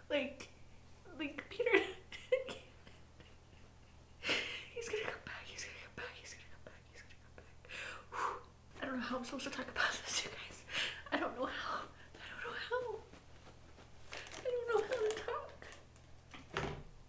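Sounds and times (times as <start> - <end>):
woman crying and sobbing: 1.6 - 5.0.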